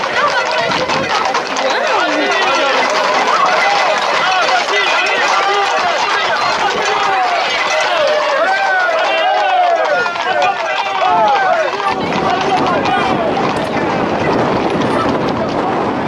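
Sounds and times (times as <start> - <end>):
crowd shouting: 0.0 - 15.9
running footsteps on road: 0.0 - 16.0.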